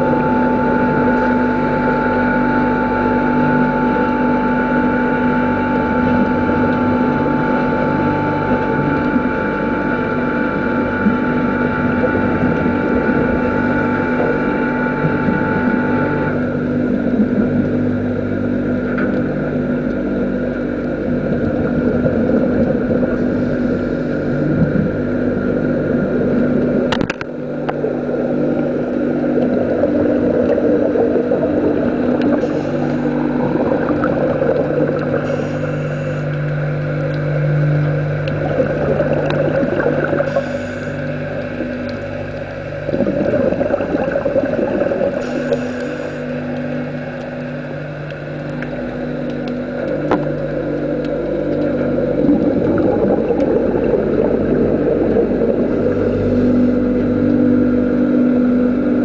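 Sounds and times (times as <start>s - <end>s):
underwater machinery drone: 0.0s - 59.0s.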